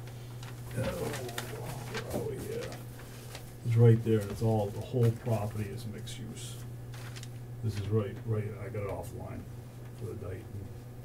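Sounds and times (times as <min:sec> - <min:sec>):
paper rustling: 0:00.0 - 0:08.2
low electrical hum: 0:00.0 - 0:11.0
man saying oh: 0:00.7 - 0:02.7.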